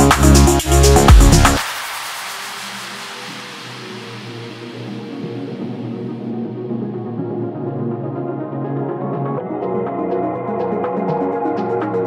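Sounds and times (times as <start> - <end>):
high wash of noise: 0.0 - 6.3.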